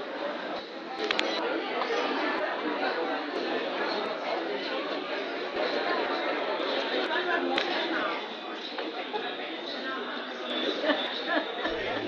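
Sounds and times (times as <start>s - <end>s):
hubbub of many people talking: 0.0s - 12.0s.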